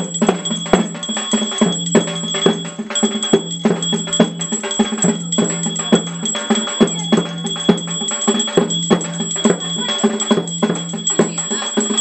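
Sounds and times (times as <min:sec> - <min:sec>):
constant high ringing: 0:00.0 - 0:12.0
drum strikes: 0:00.0 - 0:12.0
metallic bell strikes: 0:00.0 - 0:12.0.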